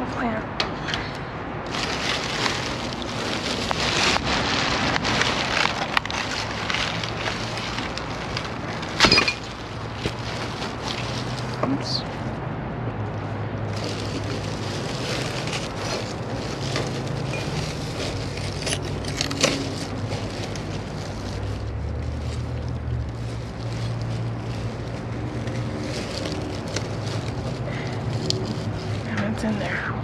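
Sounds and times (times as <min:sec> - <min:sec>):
plastic sheeting rustling: 0:01.6 - 0:12.3, 0:13.6 - 0:29.6.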